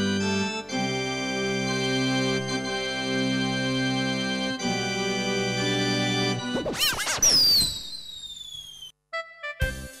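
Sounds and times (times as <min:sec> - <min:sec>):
descending whistle: 0:06.8 - 0:08.9.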